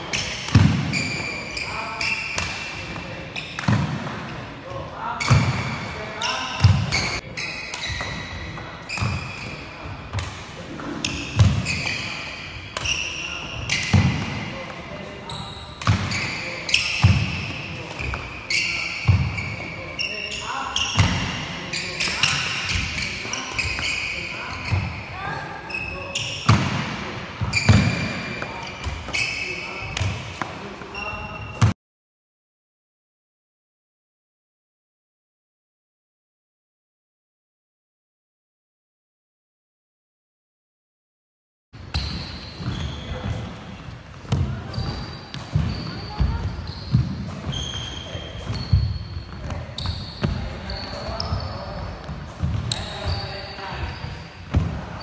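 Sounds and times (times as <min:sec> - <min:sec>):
sneakers squeaking: 0:00.0 - 0:31.8, 0:41.8 - 0:55.0
footfalls on wooden court: 0:44.2 - 0:53.2.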